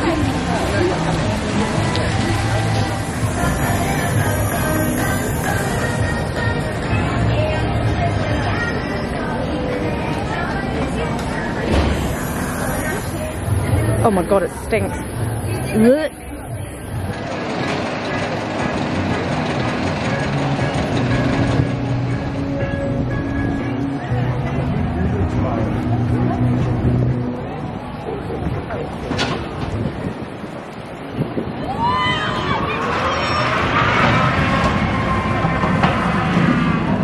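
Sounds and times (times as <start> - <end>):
wheels rumbling on steel track: 0.0 - 37.0
riders screaming: 31.6 - 35.8.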